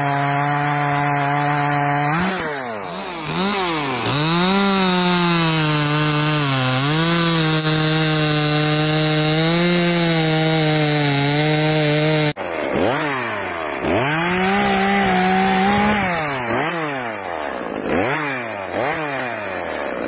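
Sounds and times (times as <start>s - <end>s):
chainsaw cutting wood: 0.0s - 20.0s.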